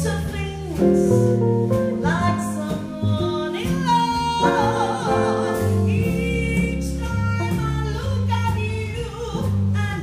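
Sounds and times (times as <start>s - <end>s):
double bass: 0.0s - 10.0s
guitar: 0.0s - 10.0s
woman singing with vibrato: 0.0s - 10.0s.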